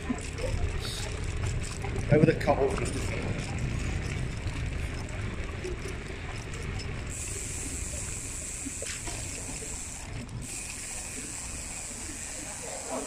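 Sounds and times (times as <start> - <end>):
wheels rolling over paving: 0.0 - 13.0
high steady hiss: 7.2 - 13.0.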